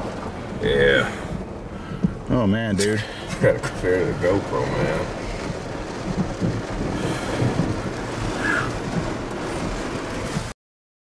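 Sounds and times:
vehicle cabin rumble and hiss: 0.0 - 10.6.

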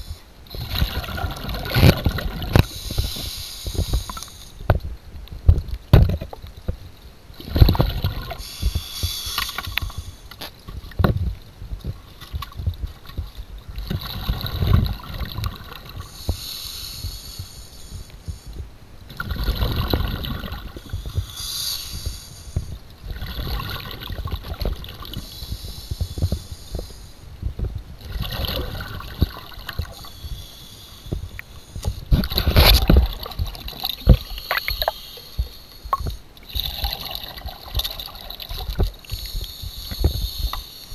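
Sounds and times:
gurgling exhaled bubbles underwater: 0.5 - 3.9, 7.4 - 8.8, 10.8 - 16.3, 19.1 - 21.3, 23.0 - 26.5, 27.4 - 30.2, 31.1 - 40.6.

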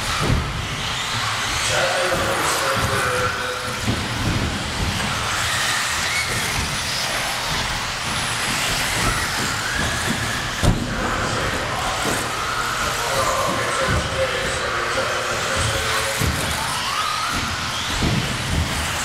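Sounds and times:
electric toy car motors whining: 0.0 - 19.0.

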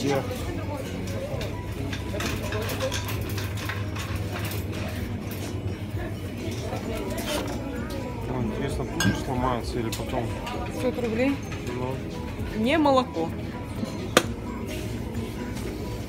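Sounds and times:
faint indistinct voices: 0.0 - 16.0.

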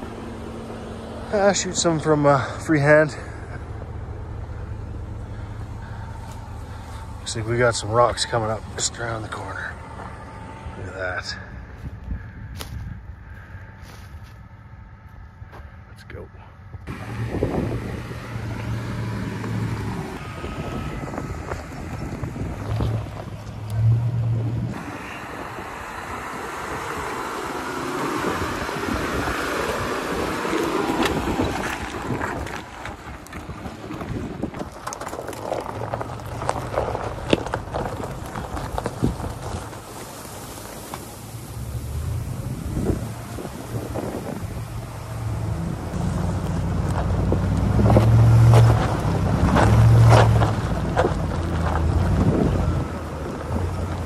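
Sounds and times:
truck engine drone: 0.0 - 54.0
wind on microphone: 16.7 - 23.7, 24.3 - 34.8, 41.3 - 46.0, 51.9 - 53.9
rocks knocking under tyres: 29.4 - 41.2, 46.0 - 54.0.

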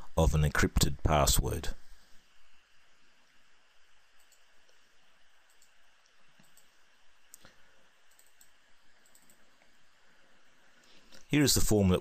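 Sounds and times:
computer mouse clicks: 4.2 - 4.8, 5.4 - 7.5, 8.1 - 9.7.

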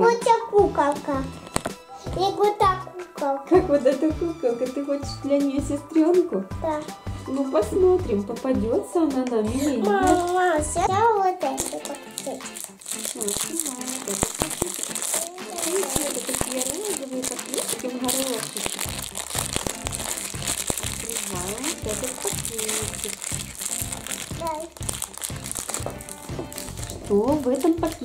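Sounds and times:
background music with steady beat: 0.0 - 28.0
plastic foil packet crinkling: 1.3 - 1.8, 9.8 - 10.5, 11.4 - 28.0.

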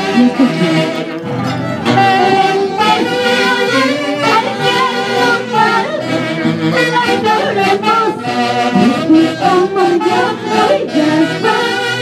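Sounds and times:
folk band playing: 0.0 - 12.0
saxophones: 0.0 - 12.0
violin: 0.0 - 12.0
woman singing into a microphone: 1.9 - 12.0.

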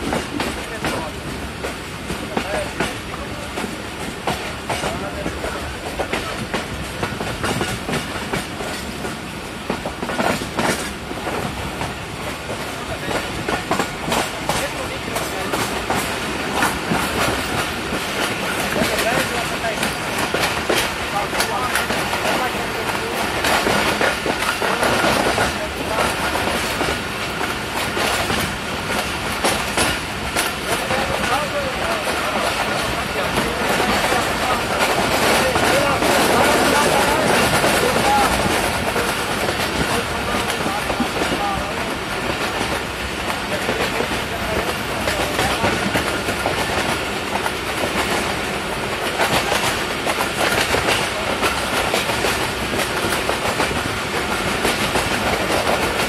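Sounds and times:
train rumble: 0.0 - 56.0
wheels clacking over rail joints: 0.0 - 56.0.

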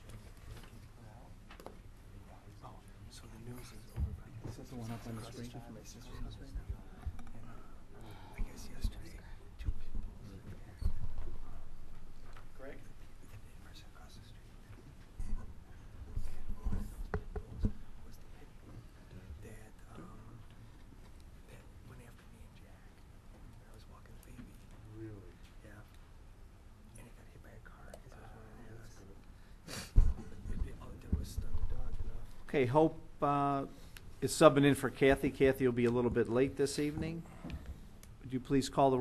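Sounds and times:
people talking and whispering: 0.0 - 39.0.

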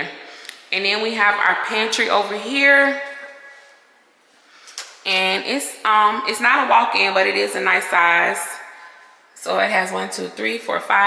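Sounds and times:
voice: 0.7 - 3.2, 5.1 - 8.7, 9.4 - 11.0.

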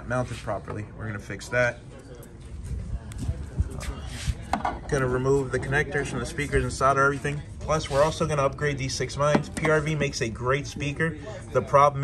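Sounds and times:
man talking: 4.8 - 12.0.

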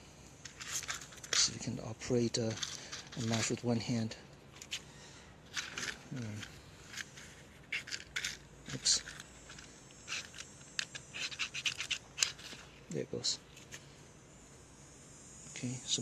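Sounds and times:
match scratching on matchbox: 5.5 - 12.7.

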